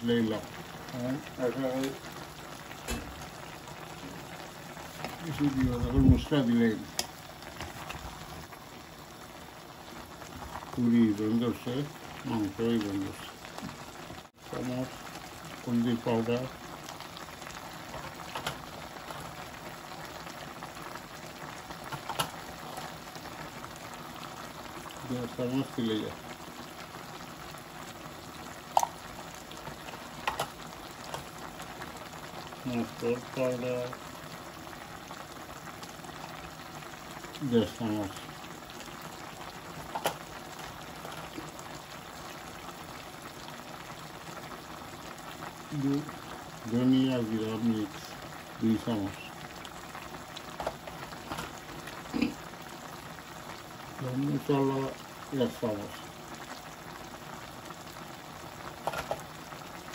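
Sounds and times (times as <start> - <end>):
curry bubbling in a pot: 0.0 - 59.9.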